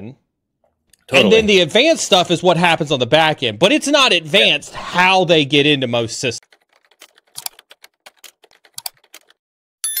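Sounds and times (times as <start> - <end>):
keyboard typing clicks: 6.5 - 9.4.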